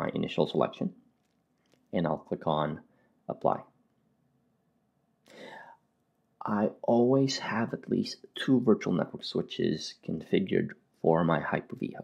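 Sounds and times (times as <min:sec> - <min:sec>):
soft whispery breath: 0:05.3 - 0:05.8.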